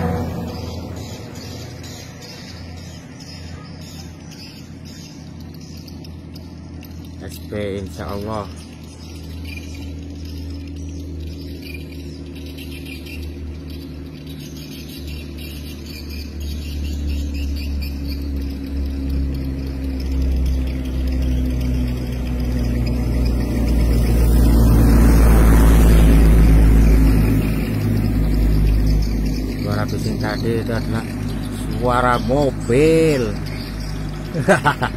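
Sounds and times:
car engine passing: 0:00.0 - 0:34.9
road noise rush: 0:00.0 - 0:34.9.

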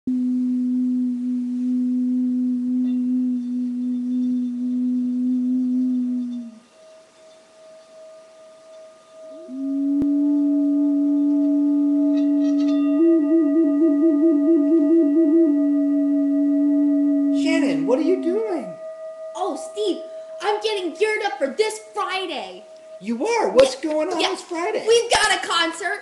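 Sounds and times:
clay vessel flute: 0:00.1 - 0:25.1
singing bowl ringing: 0:02.8 - 0:05.1, 0:06.2 - 0:25.0.

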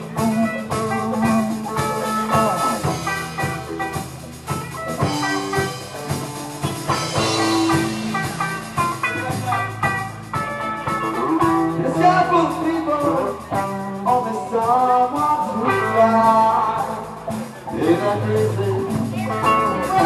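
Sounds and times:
person singing: 0:00.0 - 0:03.6, 0:10.8 - 0:20.0
drum kit: 0:00.0 - 0:20.0
electric guitars: 0:00.0 - 0:20.0.

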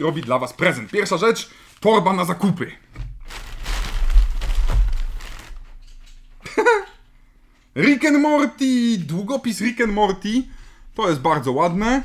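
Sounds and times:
tissue paper rustling: 0:03.2 - 0:05.8.

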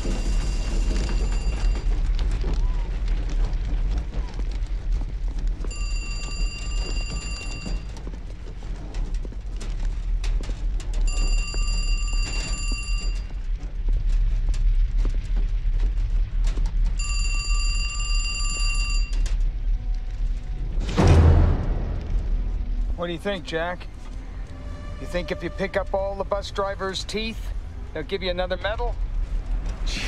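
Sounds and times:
steady low rumble: 0:00.0 - 0:30.0
payphone ringing: 0:17.0 - 0:19.3.

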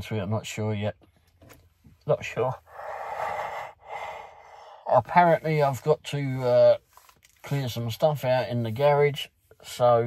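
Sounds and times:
man breathing heavily into hands: 0:02.6 - 0:04.9.

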